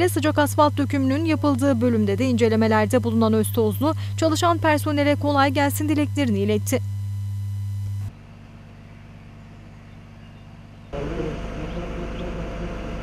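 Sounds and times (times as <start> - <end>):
faint outdoor background: 0.0 - 13.0
steady low hum: 0.0 - 13.0
road roller engine running: 8.1 - 13.0.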